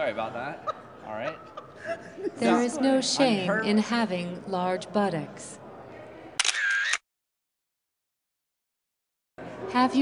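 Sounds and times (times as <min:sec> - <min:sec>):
camera shutter click: 0:06.4 - 0:07.0.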